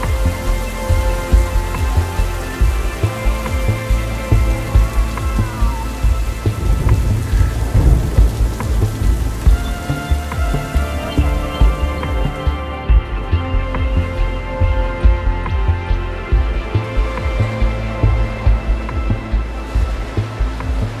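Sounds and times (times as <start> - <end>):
ambient music with held tones: 0.0 - 21.0
rain: 0.0 - 21.0
rolling thunder rumble: 0.0 - 21.0.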